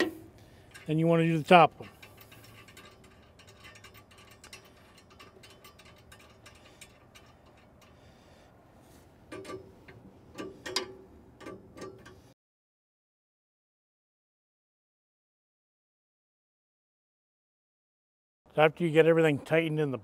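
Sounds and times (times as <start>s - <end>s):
metal clinks of wrench on frame: 0.0s - 8.4s
wrench ticking on nut: 1.8s - 8.3s.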